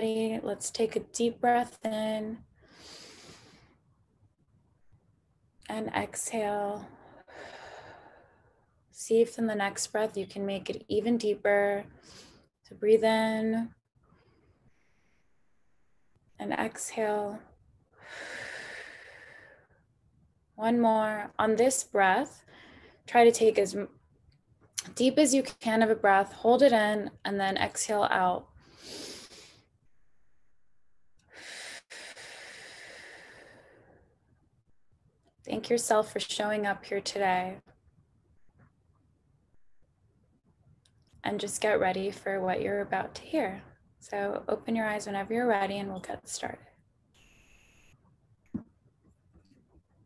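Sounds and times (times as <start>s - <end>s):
woman breathing deeply: 2.6s - 3.8s, 14.2s - 16.2s, 31.3s - 34.1s.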